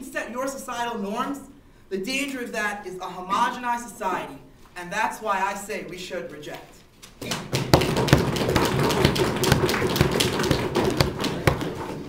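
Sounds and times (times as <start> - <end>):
audience knocking on desks: 7.2 - 12.0.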